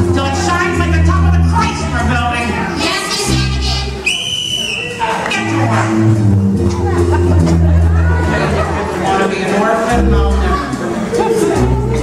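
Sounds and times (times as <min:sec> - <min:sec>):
high whistle-like tone: 0:04.0 - 0:05.0
music with low bass notes: 0:05.5 - 0:09.0, 0:09.9 - 0:12.0.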